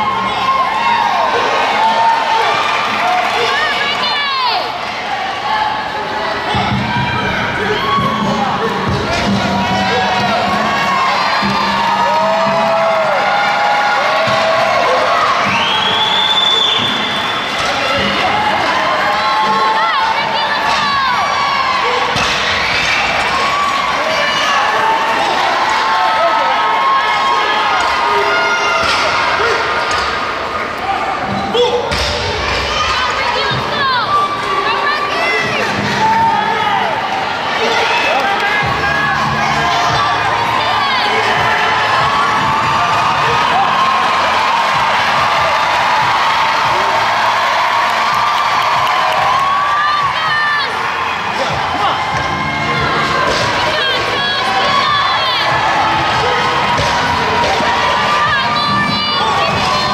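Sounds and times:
crowd cheering and shouting: 0:00.0 - 0:59.9.

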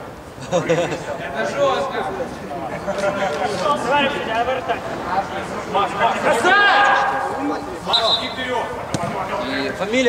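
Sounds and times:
men talking and calling out: 0:00.3 - 0:10.0.

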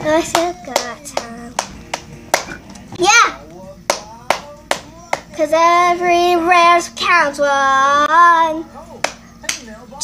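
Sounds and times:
sharp hand claps: 0:00.3 - 0:02.6, 0:03.9 - 0:05.3, 0:09.0 - 0:09.7.

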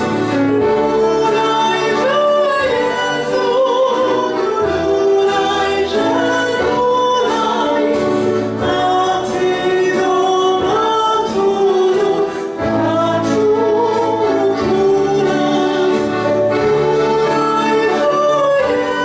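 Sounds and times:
instrumental accompaniment: 0:00.0 - 0:19.0
woman singing classical style: 0:00.1 - 0:19.0.

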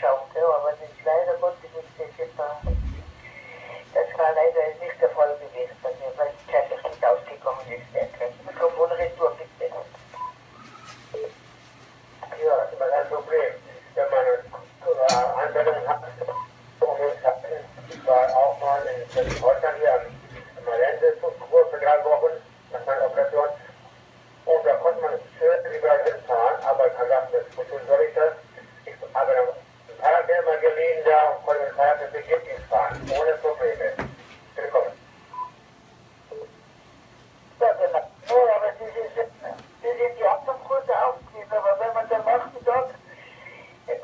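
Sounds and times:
person talking over radio: 0:00.0 - 0:09.9, 0:12.2 - 0:23.7, 0:24.5 - 0:35.0, 0:37.6 - 0:44.0
steady low hum: 0:00.0 - 0:44.0.

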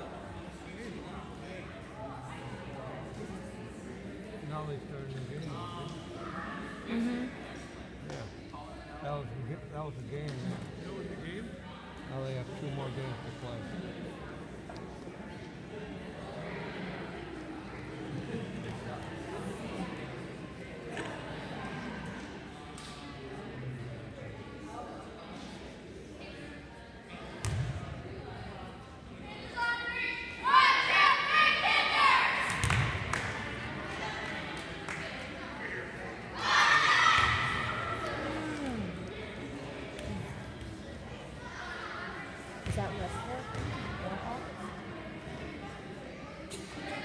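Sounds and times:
background chatter: 0:00.0 - 0:47.0
team shouting a cheer: 0:29.6 - 0:32.5.

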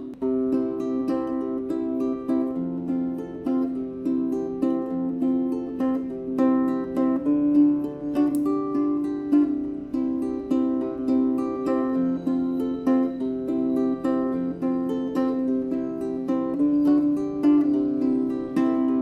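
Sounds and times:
fingerpicked ukulele melody: 0:00.0 - 0:19.0.

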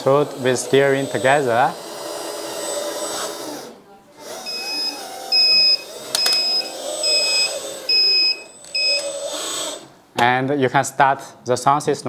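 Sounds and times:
hydraulic pump motor whining: 0:00.0 - 0:10.1
high electronic beep: 0:04.5 - 0:09.0.

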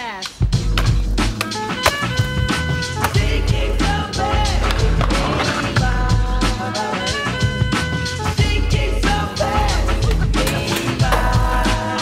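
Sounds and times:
hip-hop music: 0:00.0 - 0:12.0.

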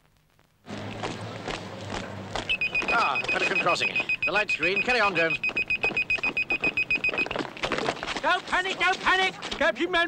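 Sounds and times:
street traffic: 0:00.6 - 0:10.0
crossing bleeper bleeping: 0:02.4 - 0:07.5.

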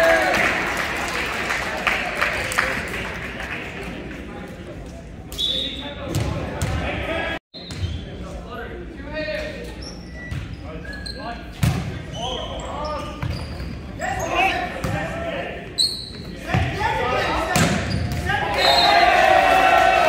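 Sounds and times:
players shouting: 0:16.4 - 0:20.0.

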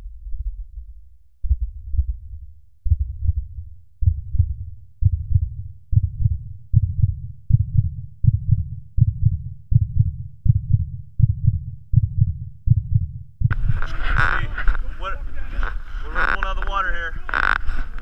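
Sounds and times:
heartbeat thumps: 0:00.0 - 0:18.0.

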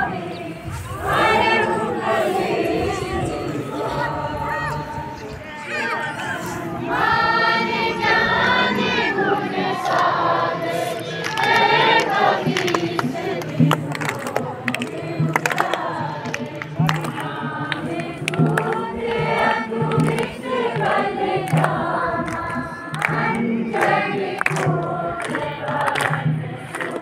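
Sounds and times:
crowd singing in unison: 0:00.0 - 0:27.0.

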